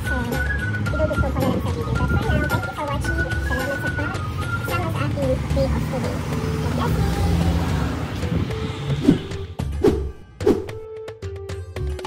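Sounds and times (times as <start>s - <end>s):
road traffic rumble: 0.0s - 10.8s.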